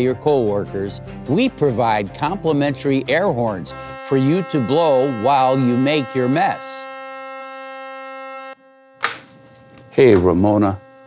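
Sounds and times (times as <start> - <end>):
air horn blast: 3.7 - 11.0.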